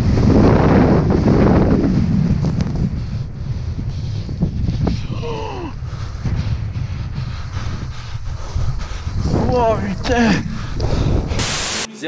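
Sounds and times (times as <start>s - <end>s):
wind buffeting microphone: 0.0s - 11.6s.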